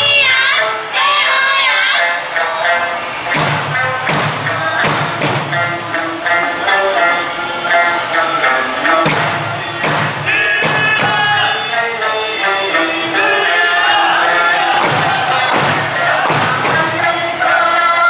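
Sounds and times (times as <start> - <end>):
folk song over sound system: 0.0 - 18.0
heavy drum strikes: 3.3 - 6.0, 9.0 - 11.6, 14.6 - 17.3.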